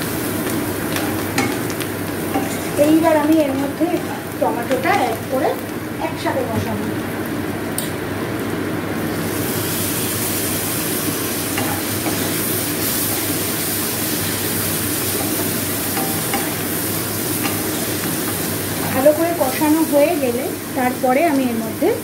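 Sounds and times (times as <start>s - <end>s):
vegetables sizzling in oil: 0.0s - 22.0s
spatula stirring in a pan: 0.2s - 5.1s, 11.3s - 20.2s.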